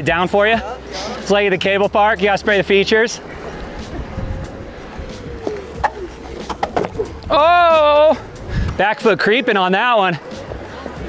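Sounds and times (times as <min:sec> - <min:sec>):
low rumble of tyre and wind: 0:03.1 - 0:08.8.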